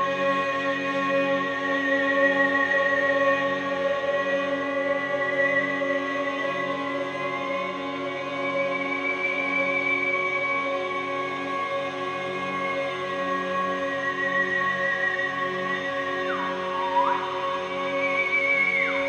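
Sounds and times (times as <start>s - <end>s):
hurdy-gurdy drones: 0.0s - 19.0s.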